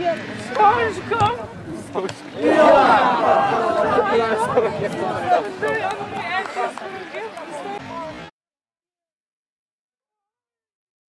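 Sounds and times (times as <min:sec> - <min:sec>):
men shouting: 0:02.3 - 0:07.9.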